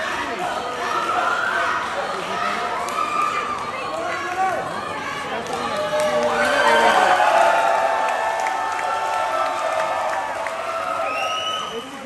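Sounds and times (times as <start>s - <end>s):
crowd calling and shouting: 0.0s - 12.0s.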